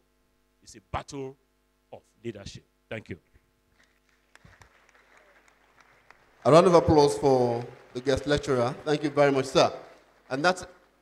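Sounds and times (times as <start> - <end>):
low mains hum: 0.0 - 11.0
faint audience applause: 3.8 - 11.0.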